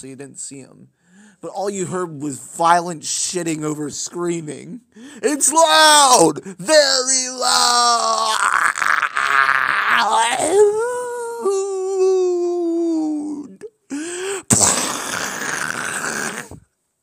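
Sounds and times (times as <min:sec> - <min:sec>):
person groaning and wailing: 0:05.2 - 0:16.6.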